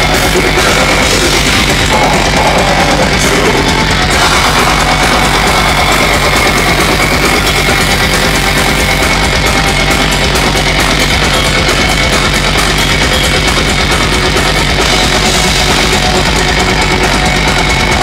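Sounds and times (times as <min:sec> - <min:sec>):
driving drums: 0:00.0 - 0:18.0
heavy distorted electric guitars: 0:00.0 - 0:18.0.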